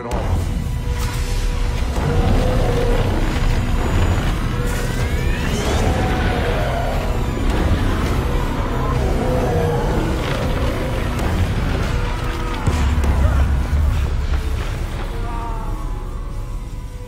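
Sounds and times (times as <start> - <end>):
deep rumble: 0.0 - 17.0
dramatic soundtrack music: 0.0 - 17.0
rising whine: 0.2 - 17.0.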